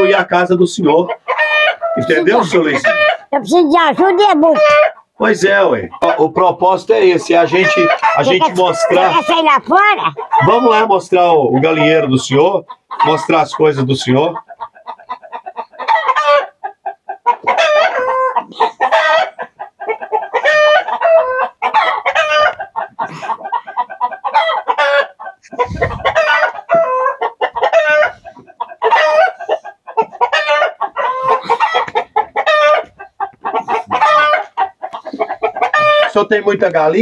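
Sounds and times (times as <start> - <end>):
roosters crowing: 0.0 - 3.3, 4.5 - 37.0
hens clucking and cackling: 0.0 - 37.0.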